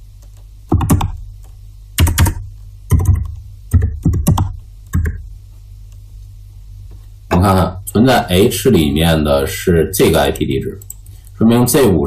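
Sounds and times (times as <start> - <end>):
steady low hum: 0.0 - 12.0
computer keyboard typing: 0.2 - 5.2.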